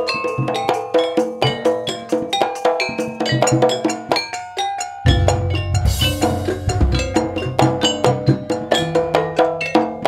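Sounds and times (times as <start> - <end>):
gamelan kettle gongs ringing: 4.6 - 10.0.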